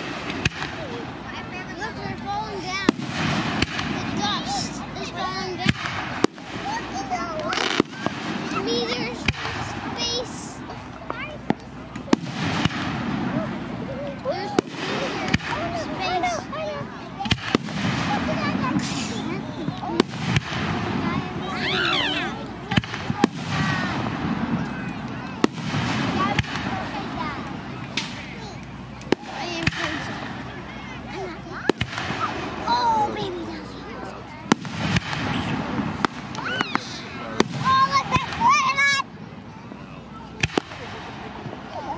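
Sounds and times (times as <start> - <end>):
fireworks bangs: 0.0 - 39.2, 40.3 - 41.9
hum of spectators' voices: 0.0 - 41.9.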